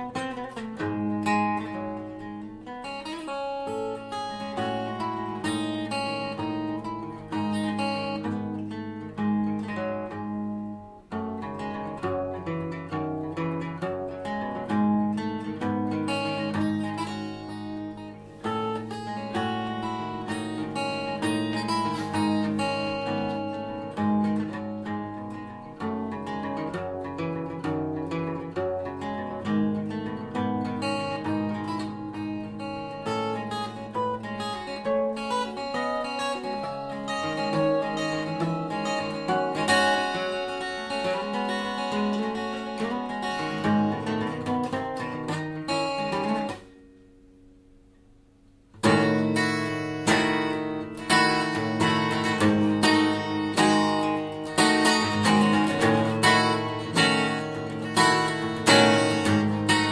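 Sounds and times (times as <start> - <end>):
acoustic guitar fingerstyle: 0.0 - 59.9.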